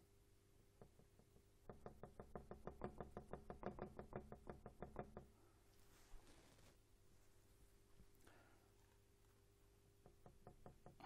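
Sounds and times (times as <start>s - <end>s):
paintbrush tapping canvas: 0.8s - 5.3s.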